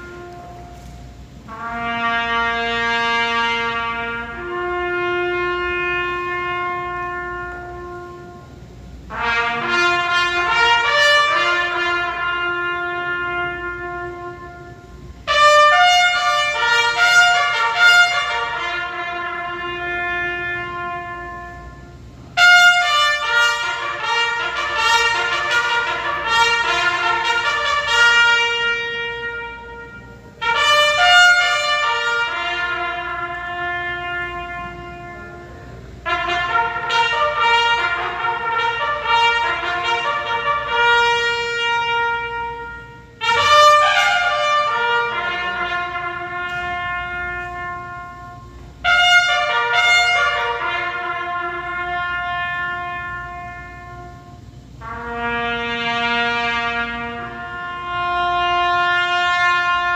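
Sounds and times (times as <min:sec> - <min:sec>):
solo trumpet playing: 0:00.0 - 0:59.9.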